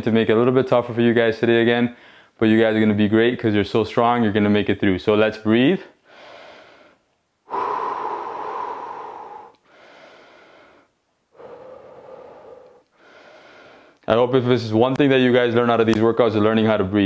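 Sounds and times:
man breathing deeply: 0:02.0 - 0:02.4, 0:06.0 - 0:14.0.

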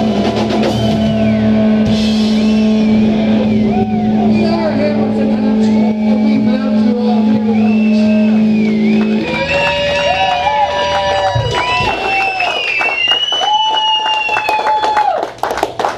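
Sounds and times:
guitar and amplifier drone: 0:00.0 - 0:14.5
high wailing guitar tones: 0:00.0 - 0:14.7.

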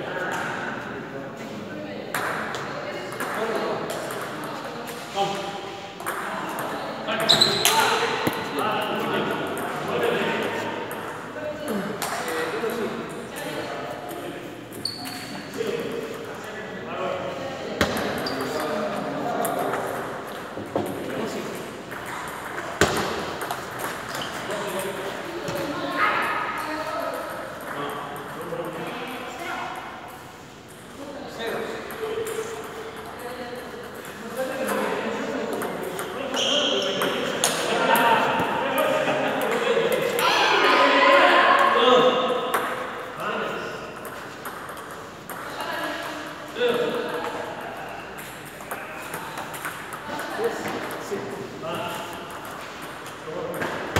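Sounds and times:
people talking: 0:00.0 - 0:20.1, 0:31.0 - 0:42.2.

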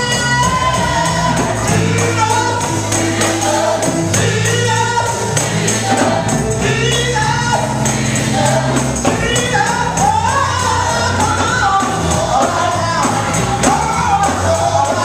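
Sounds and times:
gospel voices singing with band: 0:00.0 - 0:15.0
tambourine jingling: 0:00.0 - 0:15.0.

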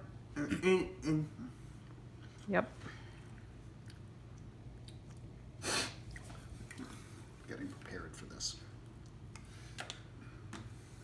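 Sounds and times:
low room hum: 0:00.0 - 0:11.0
sharp burst of breath: 0:05.6 - 0:06.0.

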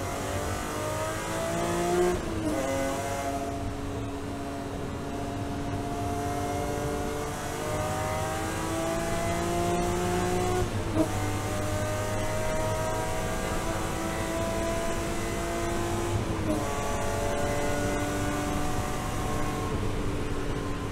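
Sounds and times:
race car engine at full throttle: 0:00.0 - 0:20.9.

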